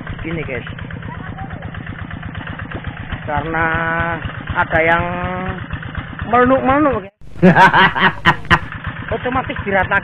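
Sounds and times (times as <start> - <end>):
hand tractor engine putter: 0.0 - 7.0
person laughing: 7.4 - 8.8.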